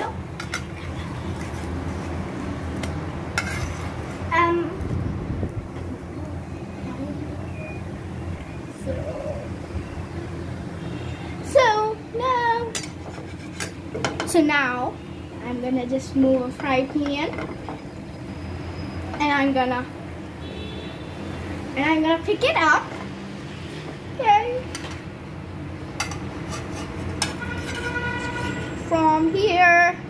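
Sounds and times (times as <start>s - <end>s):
gas burner rumble: 0.0s - 19.8s, 23.7s - 29.2s.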